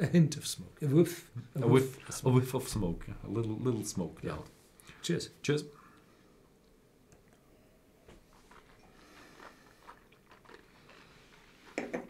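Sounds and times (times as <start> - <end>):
sipping and mouth sounds: 8.7 - 11.7
glass knocking on wooden table: 11.8 - 12.0.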